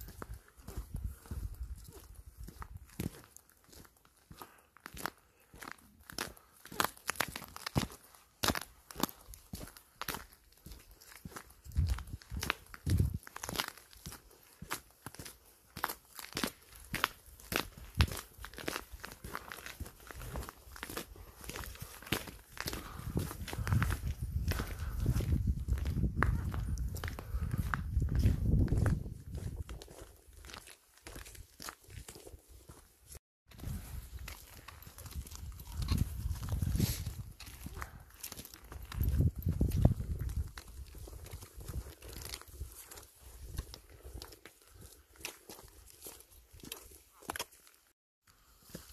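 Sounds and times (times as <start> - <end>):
footsteps crunching on gravel: 0.0 - 48.9.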